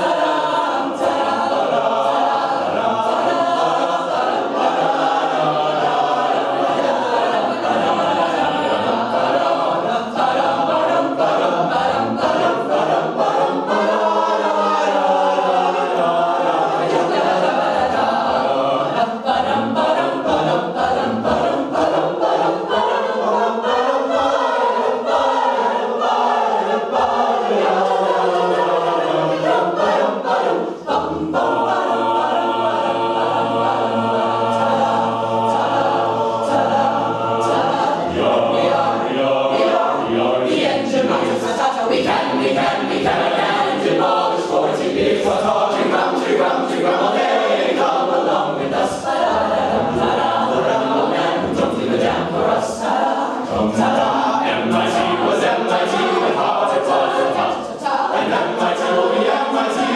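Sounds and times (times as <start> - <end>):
a cappella group singing: 0.0 - 59.9.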